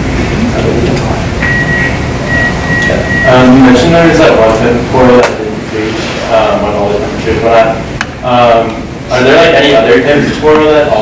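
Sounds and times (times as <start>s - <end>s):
low rumbling room noise: 0.0s - 11.0s.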